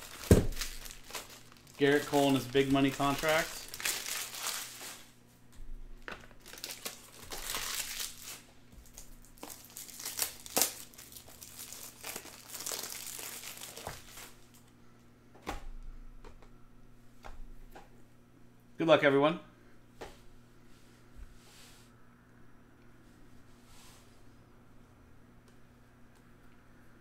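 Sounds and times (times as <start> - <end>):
foil wrappers crinkling and tearing: 0.0 - 5.2, 6.0 - 14.7.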